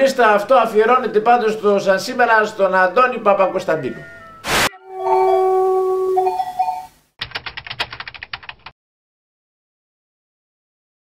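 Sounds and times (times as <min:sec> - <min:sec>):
held tone stepping up in pitch: 0:04.0 - 0:06.9.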